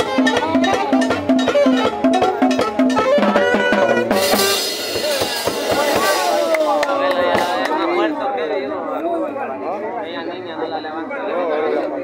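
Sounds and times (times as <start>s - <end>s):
drum kit hits: 0.0s - 7.9s
crowd talking and calling out: 0.0s - 12.0s.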